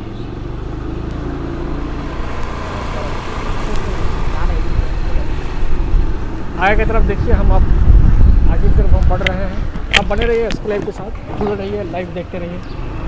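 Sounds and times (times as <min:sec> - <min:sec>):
motorbike engine and road noise: 0:00.0 - 0:13.0
wind rumbling on microphone: 0:03.5 - 0:11.5.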